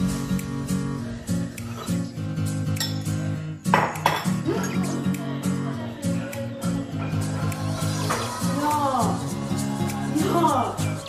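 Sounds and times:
plucked guitar music: 0:00.0 - 0:11.0
bowl and spoon clattering: 0:03.7 - 0:04.8.

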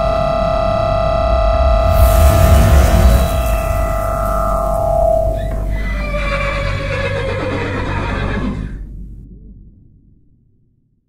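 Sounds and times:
low rumble: 0:00.0 - 0:10.9
horse whinnying: 0:05.7 - 0:08.8.

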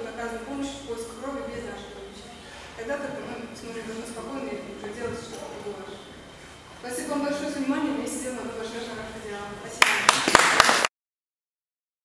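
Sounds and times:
audience applauding: 0:09.8 - 0:10.9.

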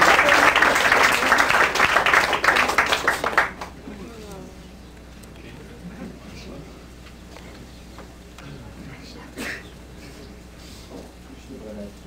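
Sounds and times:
steady low hum: 0:00.0 - 0:12.0
faint voices murmuring: 0:02.4 - 0:12.0.

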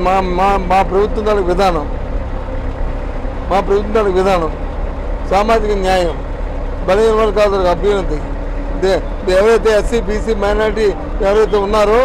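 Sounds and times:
bus engine rumbling: 0:00.0 - 0:12.0.

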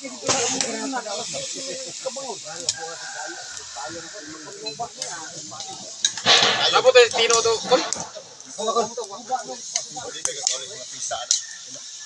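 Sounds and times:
meat sizzling in a pan: 0:00.0 - 0:12.0
metal spatula stirring: 0:06.2 - 0:08.4.

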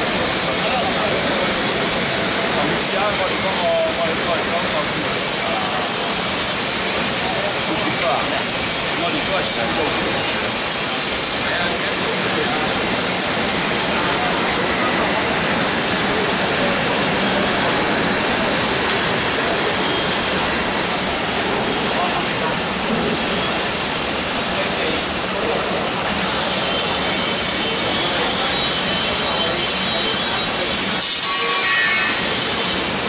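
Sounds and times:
foundry machinery roar: 0:00.0 - 0:33.0.

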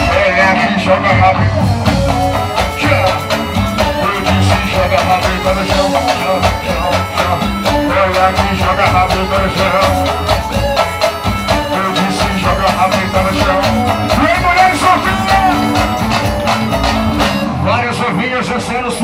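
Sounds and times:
live band playing loudly: 0:00.0 - 0:19.0.

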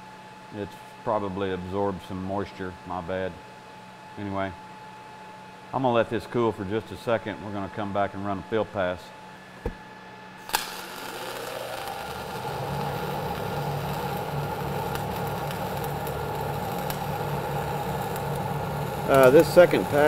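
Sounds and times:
welding arc sizzling and crackling: 0:10.4 - 0:20.0.

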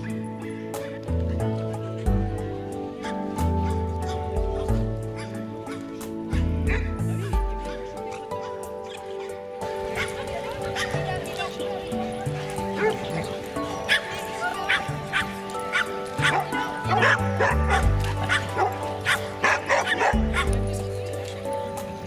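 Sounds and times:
background music: 0:00.0 - 0:22.0
dogs barking and yipping: 0:00.0 - 0:22.0.

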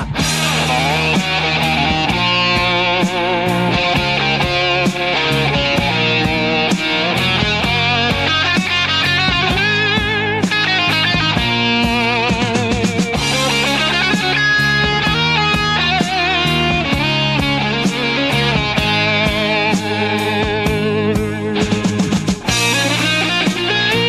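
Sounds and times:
bass guitar: 0:00.0 - 0:24.0
drum beat: 0:00.0 - 0:24.0
electric guitar melody: 0:00.0 - 0:24.0.

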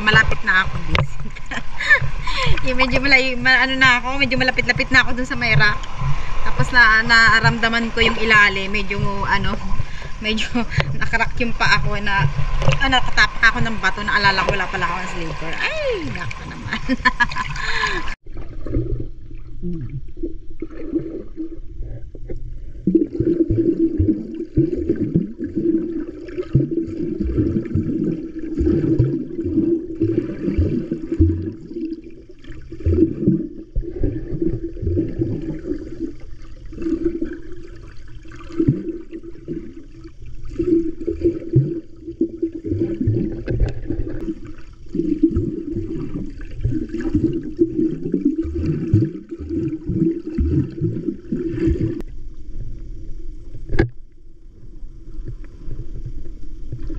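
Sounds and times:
muffled underwater sloshing: 0:00.0 - 0:56.9.

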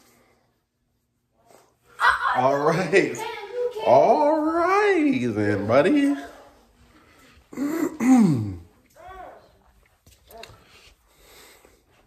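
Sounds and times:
man clearing his throat: 0:07.5 - 0:08.7.

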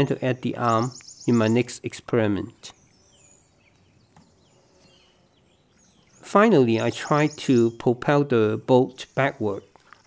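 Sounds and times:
distant bird chirps: 0:00.0 - 0:10.0.

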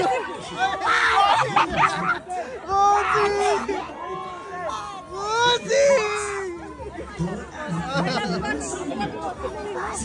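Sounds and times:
audience chattering: 0:00.0 - 0:10.0.

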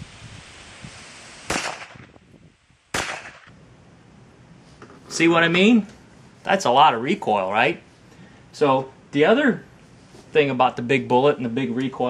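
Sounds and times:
pistol shots: 0:01.5 - 0:02.0, 0:02.9 - 0:03.5.

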